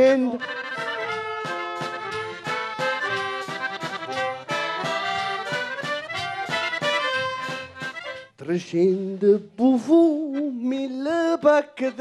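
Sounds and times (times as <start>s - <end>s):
folk street band playing: 0.0s - 9.0s
bass drums beat: 0.6s - 8.3s.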